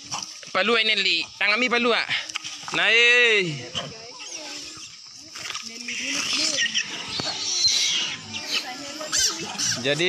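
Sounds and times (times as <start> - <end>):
people's voices: 0.1 - 10.0
monkeys squealing and chattering: 3.4 - 10.0.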